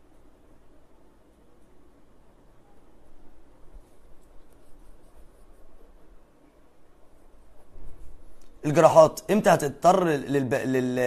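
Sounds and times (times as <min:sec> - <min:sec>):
soft scratching: 0:02.6 - 0:08.6.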